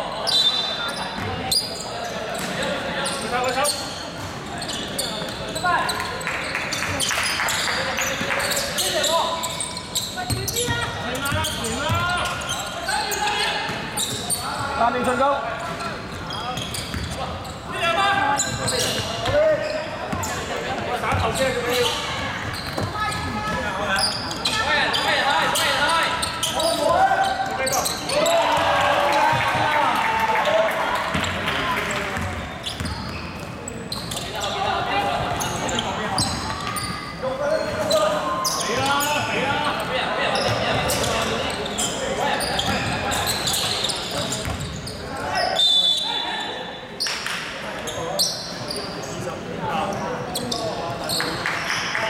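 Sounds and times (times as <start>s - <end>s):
voices echoing in a hall: 0.0s - 52.0s.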